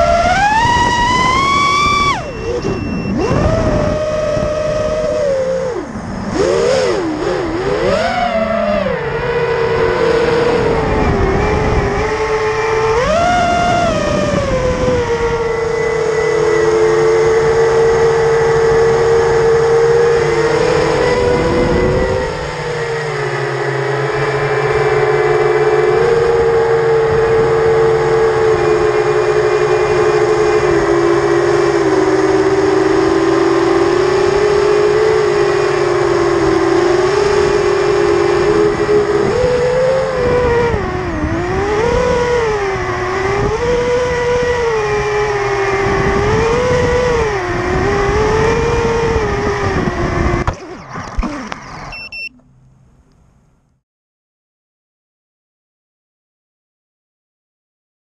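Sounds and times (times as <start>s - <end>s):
wind noise: 0.0s - 52.3s
quadcopter motors whining: 0.0s - 52.6s.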